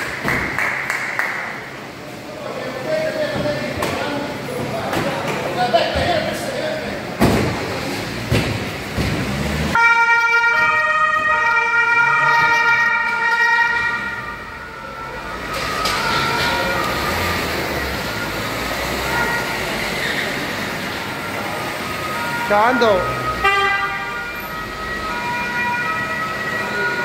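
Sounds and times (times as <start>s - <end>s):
police sirens: 9.7s - 27.0s.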